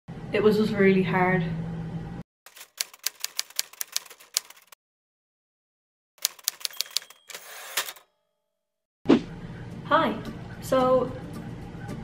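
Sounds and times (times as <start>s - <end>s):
typewriter keystrokes: 2.5s - 4.8s, 6.2s - 8.0s.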